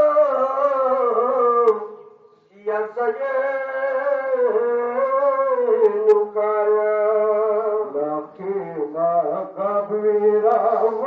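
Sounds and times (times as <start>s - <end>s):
man chanting a lament: 0.0s - 11.0s.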